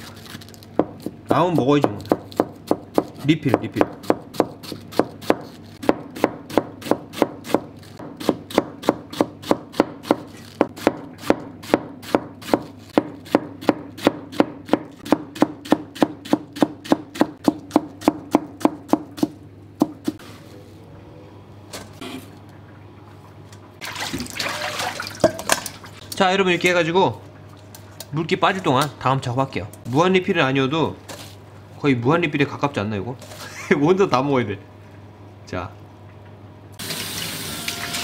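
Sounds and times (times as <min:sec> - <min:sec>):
knife chopping on plastic board: 0:00.8 - 0:20.2
water running from a tap: 0:23.8 - 0:25.3, 0:36.8 - 0:38.0.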